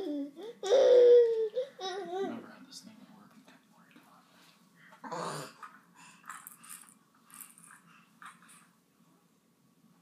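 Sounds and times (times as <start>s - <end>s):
baby grunting: 5.0s - 5.7s.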